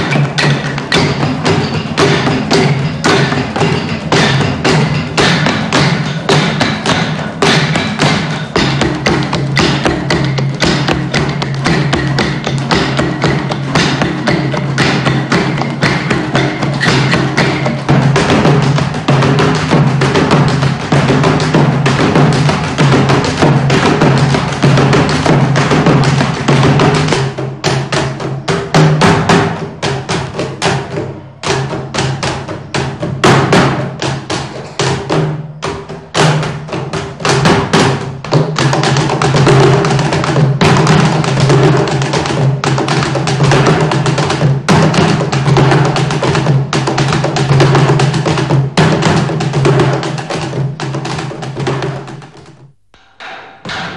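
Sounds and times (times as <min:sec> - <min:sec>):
wooden drums beaten with sticks: 0:00.0 - 0:53.9.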